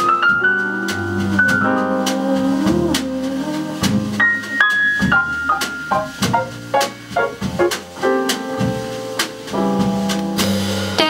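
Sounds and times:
descending piano line: 0.0 - 11.0
jazz trio playing: 0.0 - 11.0.

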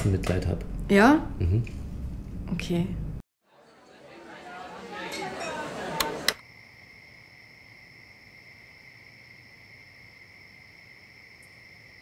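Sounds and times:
bar chatter: 3.4 - 6.4.

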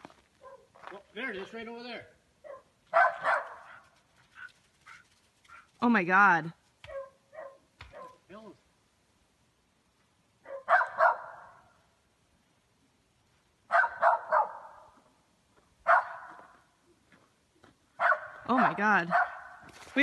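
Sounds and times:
dog barking with echo: 2.4 - 3.8, 6.9 - 8.2, 10.5 - 11.6, 13.7 - 14.9, 15.8 - 16.4, 18.0 - 18.4, 19.1 - 19.6.

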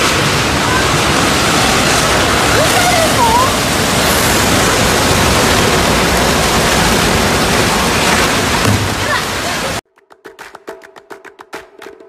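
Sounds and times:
debris flow rushing: 0.0 - 9.8.

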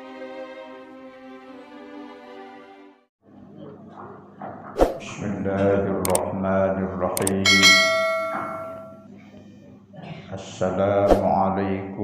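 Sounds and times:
quick double click: 7.2 - 7.6
bright bell ding: 7.4 - 9.1.

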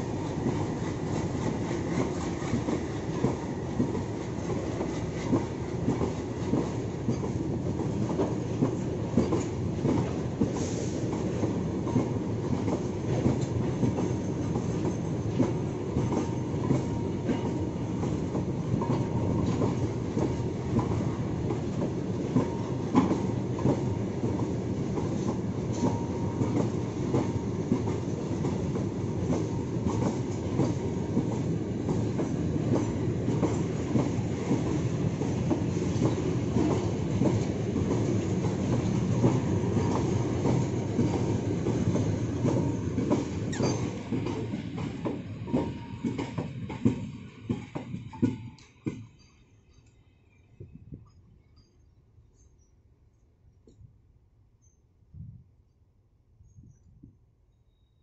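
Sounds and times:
train wheels clattering over joints: 0.0 - 49.4
faint wheel squeal: 43.5 - 44.0.

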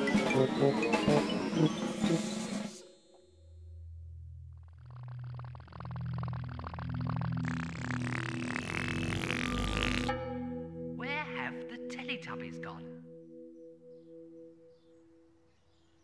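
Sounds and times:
low buzzing drone: 2.0 - 11.2.

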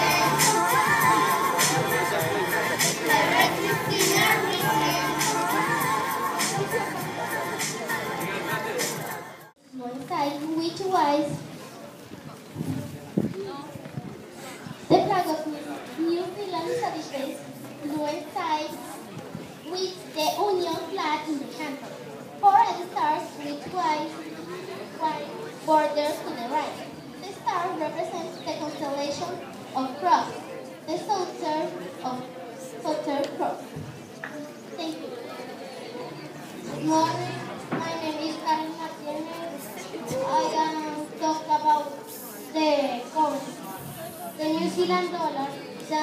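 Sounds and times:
loud child's voice: 0.0 - 7.4, 14.9 - 18.9, 19.7 - 21.8, 30.9 - 32.2, 36.7 - 43.6, 44.3 - 46.0
children talking over one another: 0.0 - 46.0.

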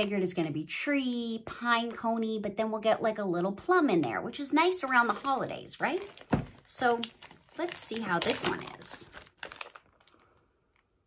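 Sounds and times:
plastic bag crinkling: 4.8 - 11.0.

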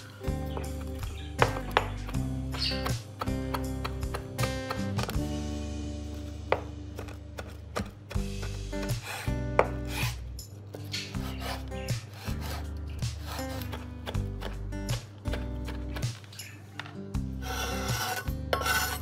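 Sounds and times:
background music: 0.0 - 19.0
knife chopping on wooden board: 1.4 - 5.2, 6.5 - 10.1, 11.2 - 16.2
blade scraping through herb: 10.8 - 13.9, 17.4 - 19.0.

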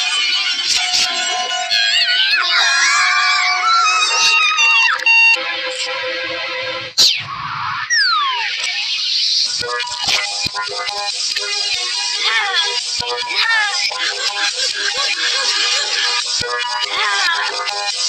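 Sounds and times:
reversed cartoon music: 0.1 - 18.0.

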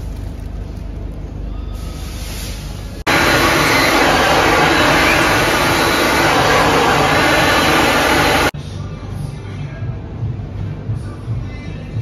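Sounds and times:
hair dryer blowing: 3.1 - 8.6.

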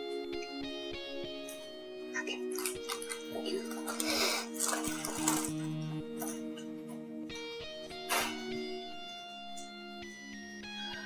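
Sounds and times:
background music with held notes: 0.0 - 11.0
plastic bag crackling: 2.5 - 5.8.

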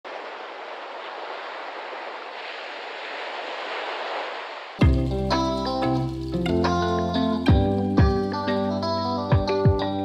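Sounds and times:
sea water rushing: 0.0 - 8.6.

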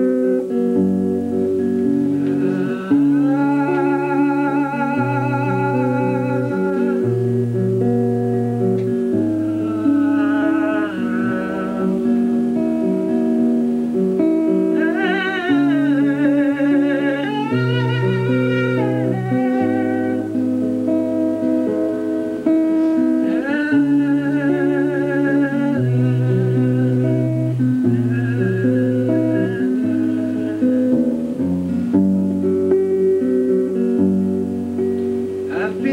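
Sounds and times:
acoustic guitar: 0.0 - 35.9
man singing: 2.2 - 7.1, 9.4 - 12.3, 23.3 - 31.2, 35.5 - 35.9.

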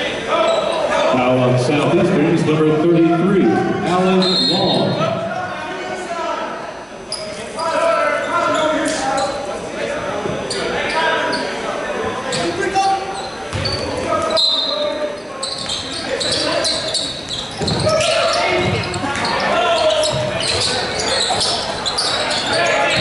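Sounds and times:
people talking and calling out: 0.0 - 23.0
basketball bouncing on court: 13.5 - 13.9, 17.5 - 19.4, 20.0 - 20.7.

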